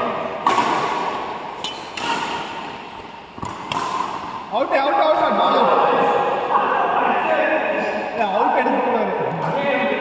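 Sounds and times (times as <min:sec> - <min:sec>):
racket hitting shuttlecock: 0:00.2 - 0:04.5.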